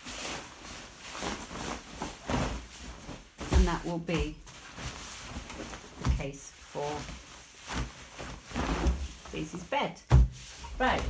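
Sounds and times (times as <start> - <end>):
fabric rustling: 0.0 - 11.0.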